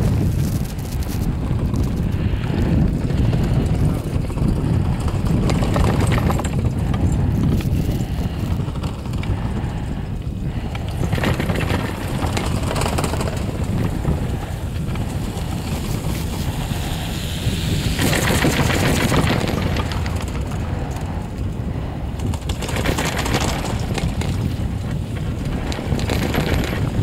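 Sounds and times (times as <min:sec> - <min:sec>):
chairlift running noise: 0:00.0 - 0:27.0
wind buffeting microphone: 0:00.0 - 0:27.0.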